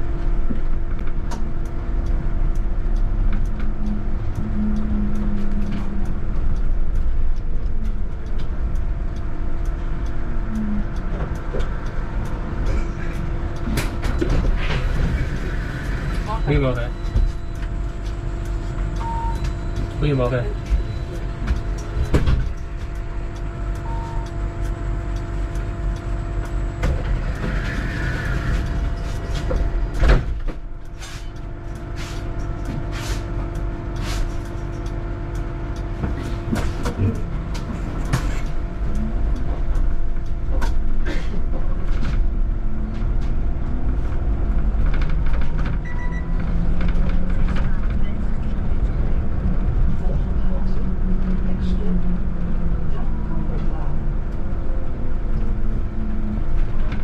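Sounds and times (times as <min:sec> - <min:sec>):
scattered clicks: 0:00.5 - 0:40.8.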